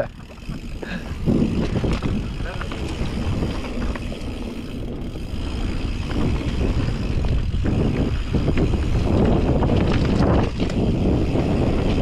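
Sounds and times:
bike clicks and rattles: 0.0s - 12.0s
tyres rolling on dirt: 0.0s - 12.0s
wind rushing over microphone: 0.0s - 12.0s.

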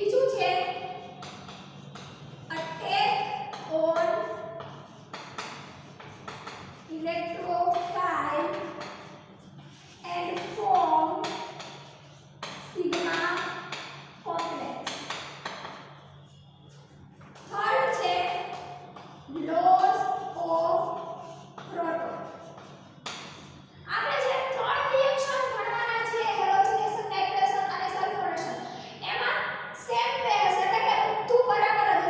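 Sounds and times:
woman speaking: 0.0s - 1.0s, 2.5s - 4.3s, 6.9s - 8.7s, 10.0s - 11.3s, 12.7s - 13.6s, 14.3s - 14.9s, 17.5s - 18.6s, 19.3s - 21.0s, 21.7s - 22.4s, 23.9s - 32.0s
steady low hum: 0.0s - 32.0s
chalk tapping on blackboard: 0.1s - 28.5s.

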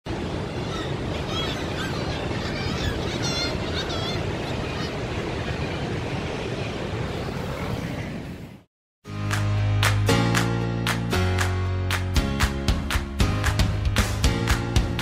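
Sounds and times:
sea surf breaking: 0.1s - 8.6s
seabird calls: 0.4s - 5.9s.

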